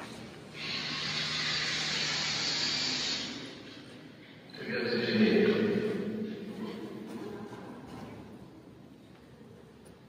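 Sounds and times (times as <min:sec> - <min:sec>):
steady hiss over loudspeakers: 0:00.0 - 0:10.0.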